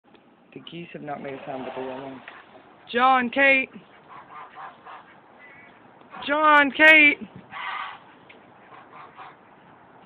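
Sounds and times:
fowl calling: 3.8s - 6.5s, 7.5s - 9.6s.

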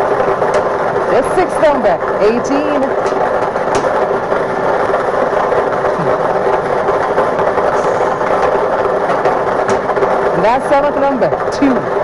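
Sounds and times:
balls clattering in a drum: 0.0s - 12.0s
machine hum: 0.0s - 12.0s.

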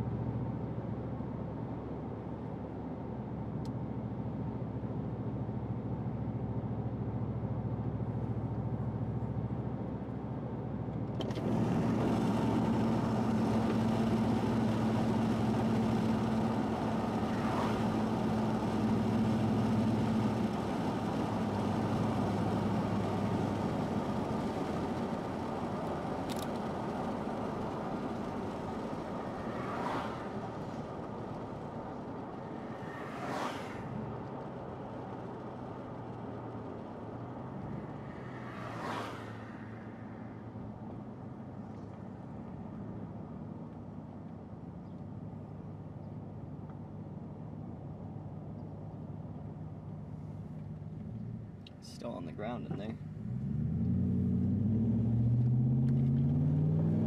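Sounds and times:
car engine hum: 0.0s - 57.0s
road noise: 0.0s - 57.0s.

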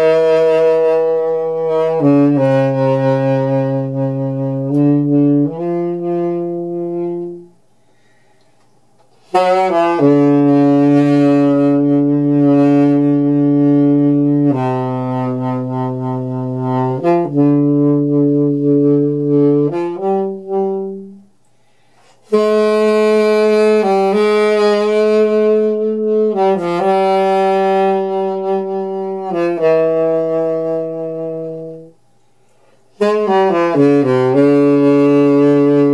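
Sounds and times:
saxophone low held notes: 0.0s - 35.9s.

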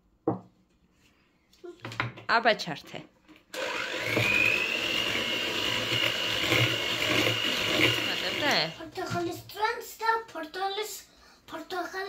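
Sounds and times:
kitchen mixer motor whine: 3.5s - 8.8s.

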